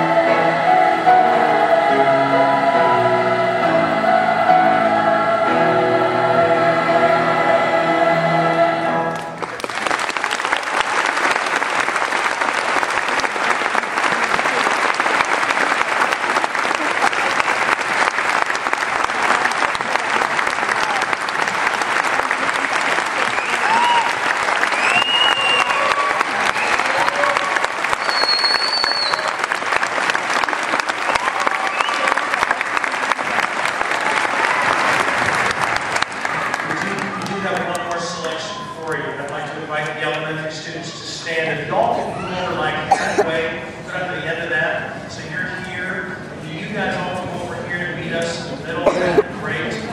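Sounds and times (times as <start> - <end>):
choir singing held chord: 0.0 - 9.4
audience applause: 9.1 - 39.0
cheers and whistles: 23.2 - 29.5, 30.8 - 32.5, 38.2 - 39.0.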